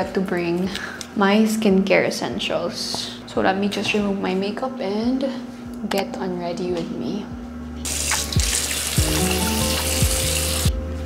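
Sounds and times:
water running from a tap: 0:07.9 - 0:10.7
background music with a beat: 0:08.0 - 0:11.0.

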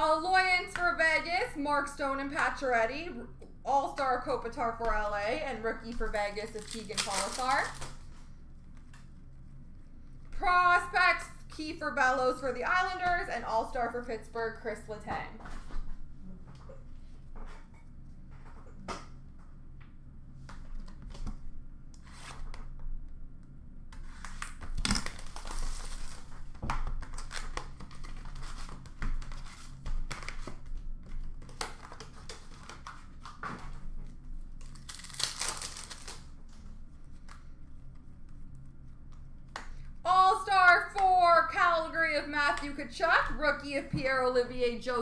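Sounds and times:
wrapper crinkling: 0:06.2 - 0:08.1, 0:24.2 - 0:26.4, 0:34.1 - 0:37.4
card packs tearing open: 0:06.4 - 0:08.0, 0:24.1 - 0:26.4, 0:34.6 - 0:36.3
cards clicking and shuffling: 0:06.4 - 0:08.2, 0:24.0 - 0:40.0.

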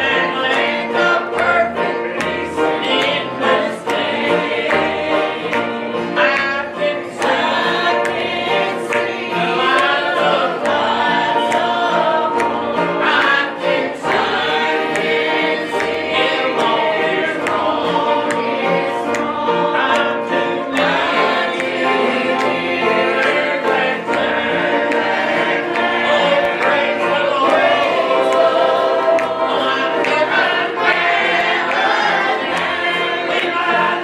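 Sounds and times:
group singing a gospel song: 0:00.0 - 0:34.0.

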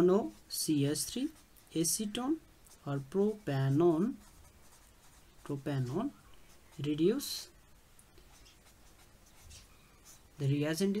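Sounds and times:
marker scratching on paper: 0:00.2 - 0:10.4.

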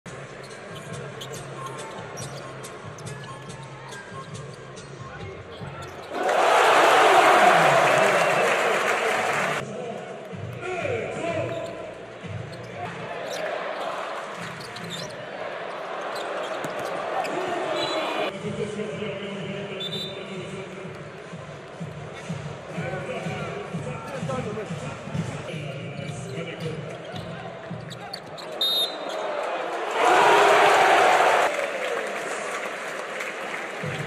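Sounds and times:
shoe squeaks on court: 0:00.3 - 0:06.2, 0:11.4 - 0:15.3, 0:16.0 - 0:18.3, 0:25.9 - 0:29.4
crowd cheering burst: 0:06.1 - 0:09.6, 0:28.9 - 0:34.0
commentator speaking: 0:17.3 - 0:21.0.

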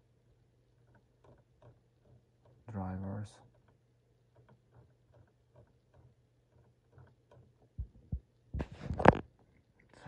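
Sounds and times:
soft low thumps on microphone: 0:07.8 - 0:09.2.

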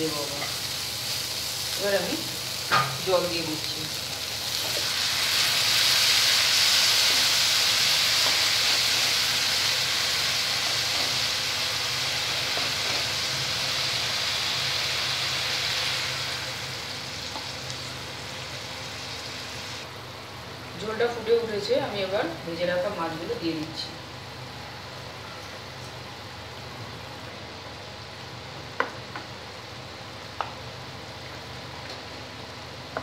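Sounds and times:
vegetables sizzling in a wok: 0:00.0 - 0:33.0.

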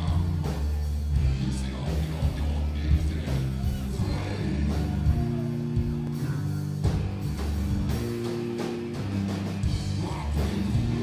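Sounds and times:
distorted electric guitars: 0:00.0 - 0:11.0
drum kit hits: 0:04.9 - 0:11.0.

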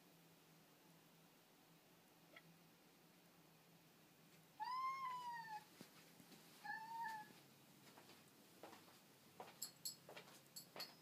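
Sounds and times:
cat meowing: 0:04.6 - 0:05.7, 0:06.6 - 0:07.4.

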